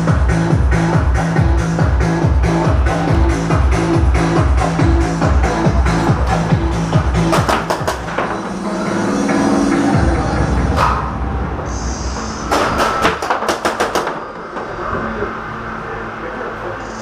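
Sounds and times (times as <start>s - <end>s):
music over speakers: 0.0s - 11.8s.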